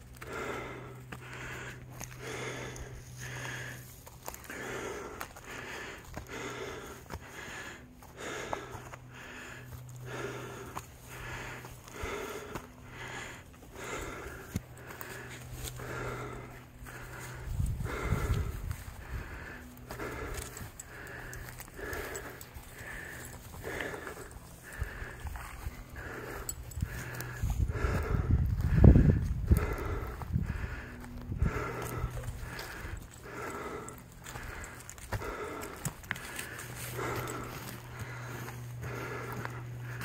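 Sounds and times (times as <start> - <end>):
footsteps through dry grass: 0.0 - 40.0
person breathing heavily: 0.0 - 40.0
low rumble on microphone: 25.6 - 32.6.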